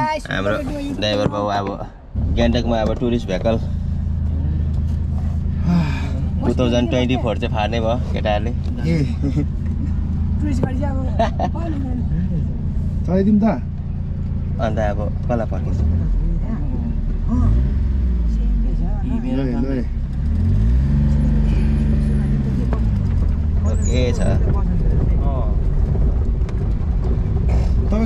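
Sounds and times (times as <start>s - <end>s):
car engine from inside cabin: 0.0s - 28.0s.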